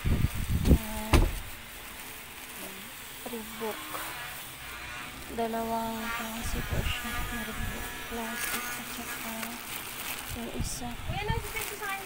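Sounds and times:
microphone handling thumps and rubbing: 0.0s - 1.6s.

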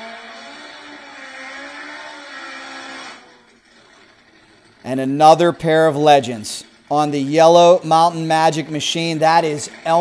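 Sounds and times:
distant drag motorcycle engine: 0.0s - 10.0s.

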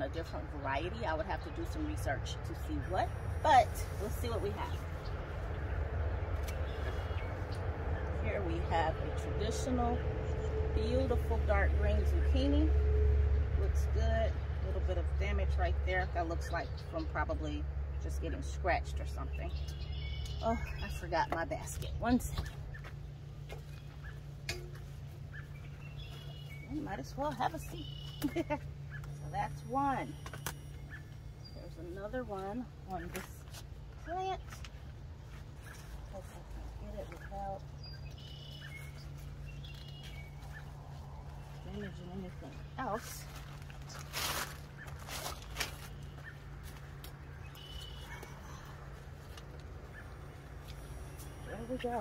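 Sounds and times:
steady low hum: 0.0s - 52.0s
faint bird chirps: 27.6s - 31.8s, 37.0s - 41.9s, 47.4s - 48.8s
leaves rustling: 29.7s - 52.0s.

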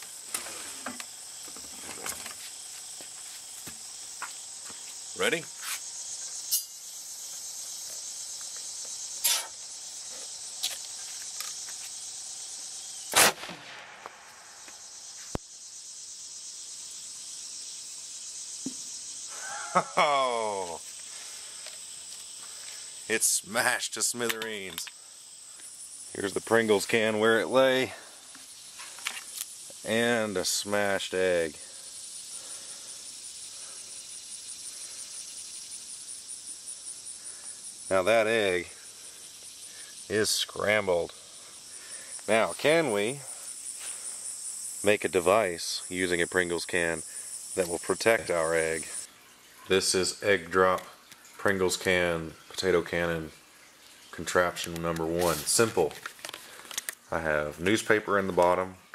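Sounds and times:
crickets chirping: 0.0s - 58.9s
insects buzzing: 0.0s - 58.9s
potato cannon firing bang: 13.1s - 14.4s.

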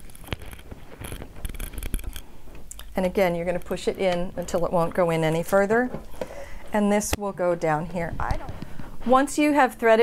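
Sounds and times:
cord scratching and rubbing: 0.0s - 6.2s.

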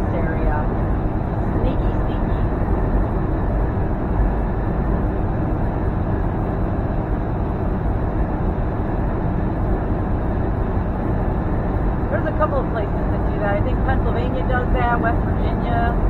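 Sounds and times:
truck engine droning: 0.0s - 16.0s.

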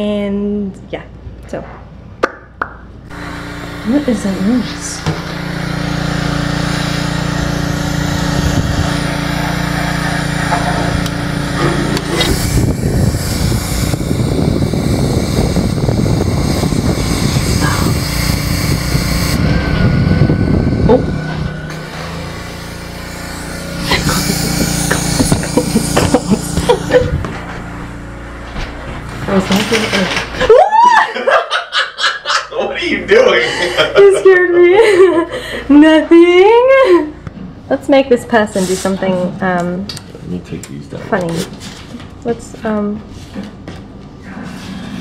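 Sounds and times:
small engine running: 3.1s - 30.5s.

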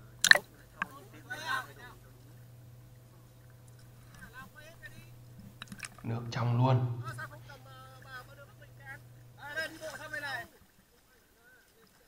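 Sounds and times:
low hum: 0.0s - 10.4s
distant voices talking: 0.0s - 12.0s
sharp clicks: 0.2s - 0.9s.

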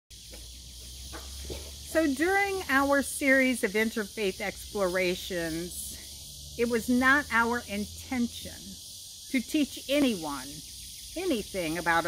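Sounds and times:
insects hissing: 0.1s - 12.0s
woman speaking: 1.9s - 6.0s, 6.6s - 8.7s, 9.3s - 10.6s, 11.2s - 12.0s.

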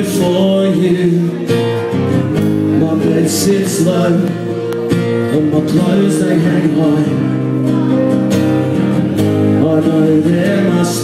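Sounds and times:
acoustic guitar strumming: 0.0s - 11.0s
person singing: 2.7s - 11.0s.

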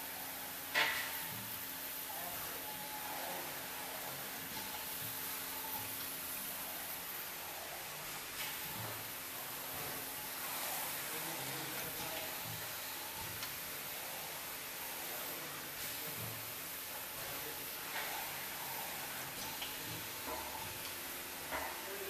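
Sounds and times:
printing machine hiss: 0.0s - 22.0s.

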